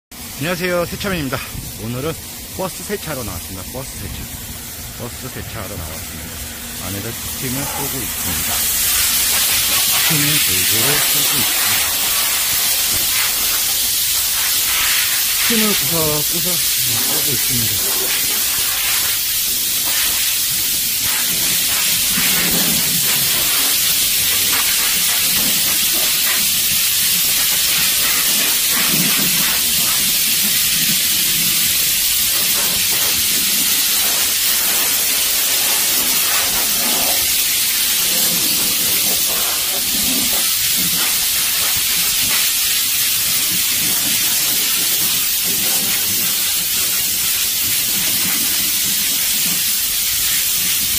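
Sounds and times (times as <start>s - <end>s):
steam cleaner hissing: 0.2s - 50.9s.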